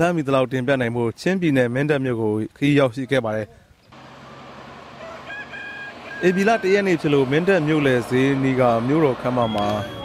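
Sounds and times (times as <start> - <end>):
chicken calling: 4.9 - 7.0.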